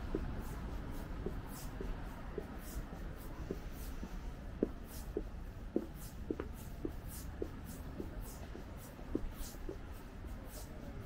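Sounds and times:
footsteps on pavement: 0.0s - 10.9s
steady low rumble: 0.0s - 11.0s.

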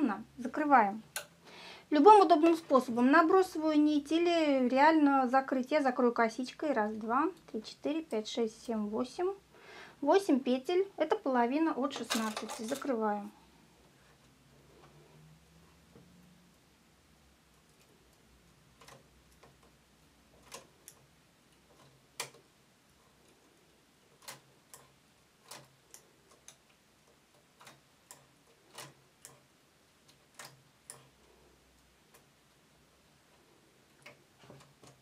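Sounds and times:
faint metallic needle clicks: 1.1s - 1.4s, 18.8s - 32.3s, 33.3s - 35.0s.

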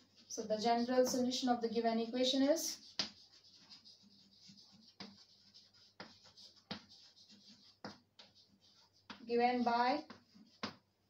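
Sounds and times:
chalk scratching on blackboard: 0.0s - 10.9s.

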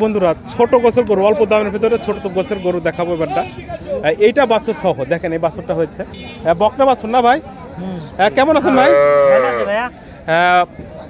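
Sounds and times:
cattle mooing: 8.6s - 9.8s.

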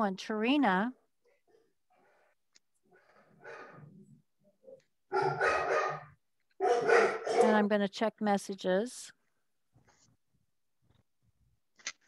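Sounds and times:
dog barking: 3.4s - 3.9s, 5.1s - 7.6s.

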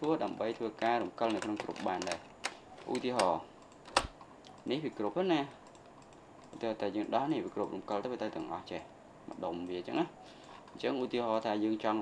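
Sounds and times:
man speaking: 0.0s - 3.5s, 6.6s - 10.2s, 10.8s - 12.0s.

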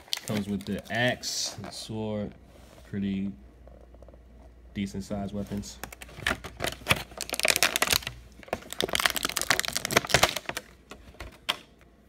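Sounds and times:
plastic blister tray crackling: 0.0s - 2.0s, 5.3s - 11.8s.

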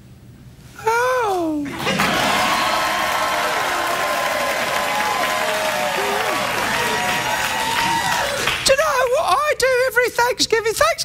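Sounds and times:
whoops: 0.8s - 8.6s
audience applauding and cheering: 1.7s - 9.3s.

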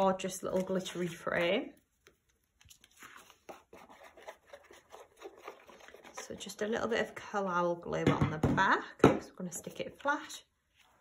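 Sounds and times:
paper card rustling: 0.0s - 6.4s.

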